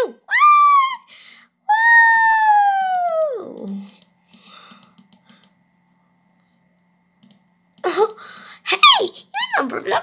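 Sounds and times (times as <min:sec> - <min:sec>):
faint electrical hum: 0:00.0 - 0:10.0
computer clicks: 0:02.9 - 0:05.6, 0:07.2 - 0:08.5.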